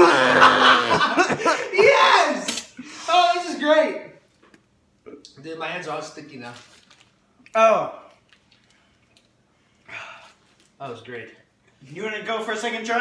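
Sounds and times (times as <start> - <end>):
laughter: 0.0 - 1.7
garbled voice of young man: 0.0 - 4.1.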